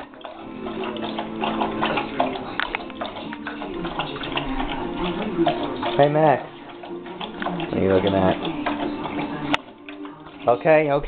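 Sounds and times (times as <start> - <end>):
background music: 0.0 - 11.0
dog chewing and lapping: 0.0 - 11.0.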